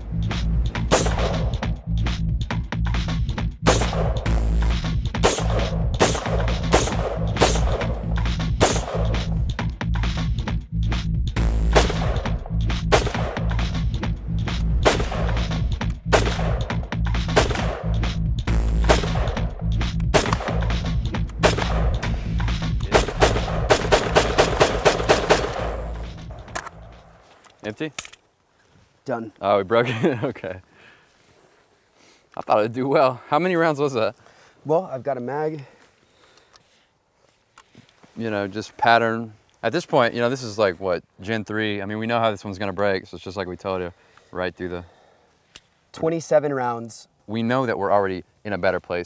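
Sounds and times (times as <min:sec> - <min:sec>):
rifle gunshots: 0:00.9 - 0:01.6, 0:03.6 - 0:04.4, 0:05.2 - 0:09.3, 0:11.7 - 0:13.7, 0:14.8 - 0:18.0, 0:18.8 - 0:19.5, 0:20.1 - 0:20.8, 0:21.4 - 0:22.1, 0:22.9 - 0:26.5.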